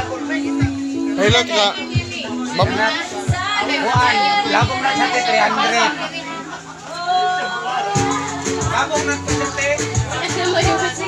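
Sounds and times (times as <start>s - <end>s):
people talking: 0.0s - 11.0s.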